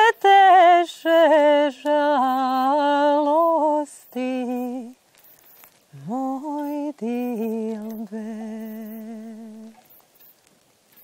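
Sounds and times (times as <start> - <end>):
woman singing a low note: 6.0 - 9.8.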